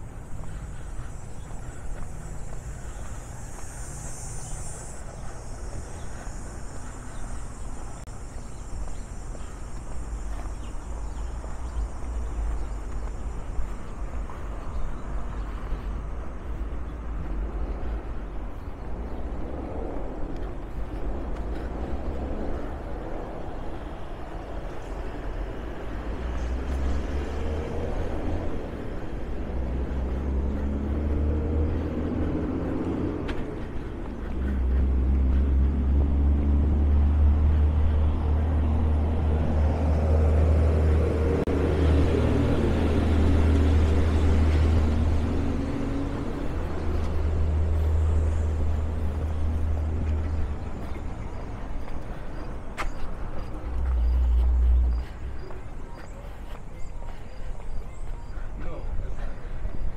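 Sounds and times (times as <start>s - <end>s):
vehicles passing: 0.0s - 59.9s.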